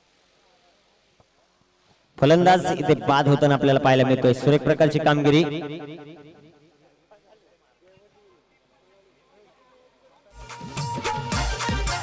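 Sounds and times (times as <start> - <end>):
man speaking: 2.2 - 6.1.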